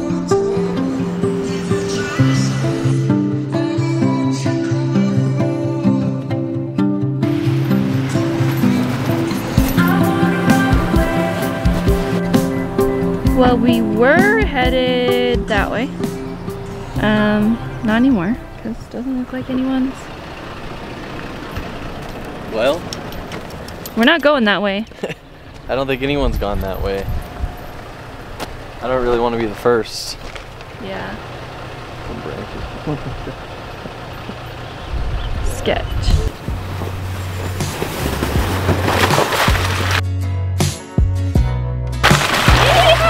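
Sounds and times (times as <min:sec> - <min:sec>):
background music with low bass: 0:00.0 - 0:19.4, 0:36.0 - 0:43.0
tyres driving through slushy snow: 0:07.2 - 0:14.9, 0:15.8 - 0:40.0, 0:42.0 - 0:43.0
pickup truck engine idling: 0:07.2 - 0:38.8.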